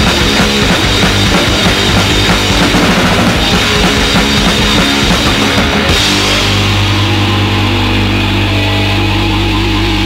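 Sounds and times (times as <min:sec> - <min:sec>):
distorted guitar and bass feedback: 0:00.0 - 0:10.0
drums: 0:00.0 - 0:10.0.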